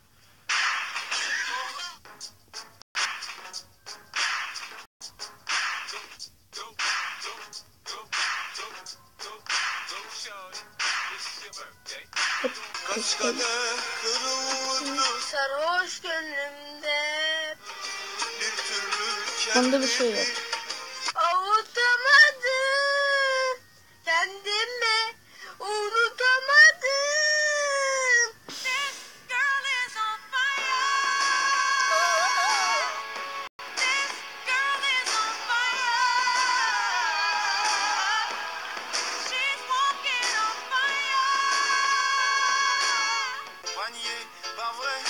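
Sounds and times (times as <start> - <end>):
whip-like crack: 0.5 - 1.5, 4.2 - 4.8, 5.5 - 6.0, 6.8 - 7.3, 10.8 - 11.2
voice snippets: 12.3 - 15.2, 31.8 - 33.0
girl singing: 12.4 - 13.6, 14.2 - 17.6, 21.2 - 33.0, 33.8 - 38.2.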